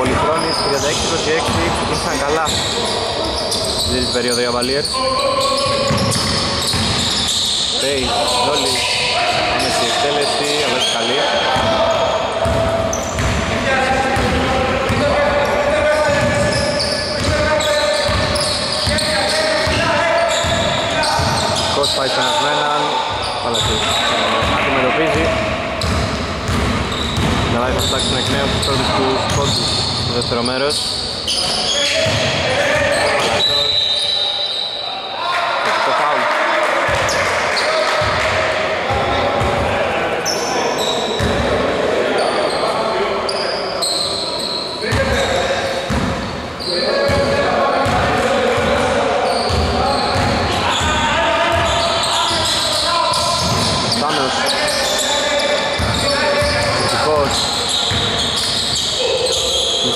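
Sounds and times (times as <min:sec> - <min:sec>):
players calling out: 0:00.0 - 0:59.9
basketball bouncing on wooden court: 0:05.6 - 0:07.2, 0:12.4 - 0:13.5, 0:14.1 - 0:15.2, 0:16.0 - 0:21.6, 0:23.6 - 0:30.2, 0:32.0 - 0:32.4, 0:41.2 - 0:41.4, 0:45.9 - 0:46.2, 0:49.5 - 0:54.0, 0:55.8 - 0:58.9.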